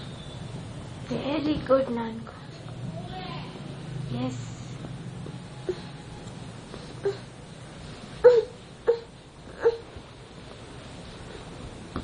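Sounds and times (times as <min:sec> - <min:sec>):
dog whimpering: 0:08.2 - 0:09.9.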